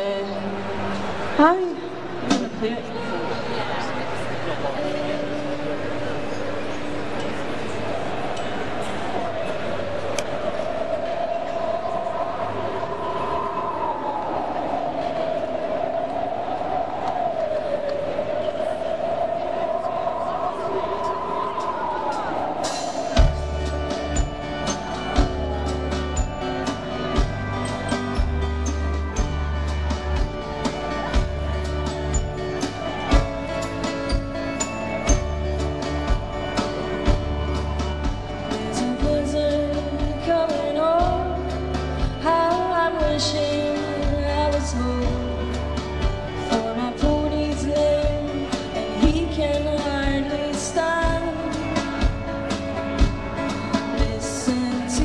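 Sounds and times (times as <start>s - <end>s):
crowd murmuring: 0.0s - 55.0s
band playing slow country song: 22.8s - 55.0s
woman singing: 38.4s - 45.7s, 46.4s - 52.2s, 53.8s - 55.0s.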